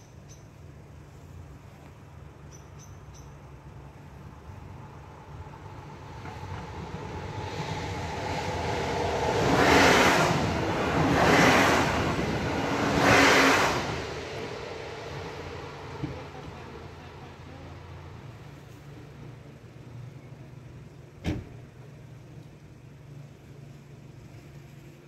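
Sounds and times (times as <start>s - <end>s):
train wheels on rails: 5.4s - 17.8s.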